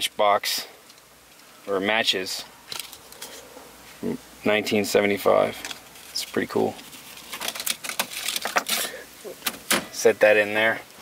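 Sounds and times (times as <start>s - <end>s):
handling clicks and rustles: 2.7s - 3.5s, 5.5s - 11.0s.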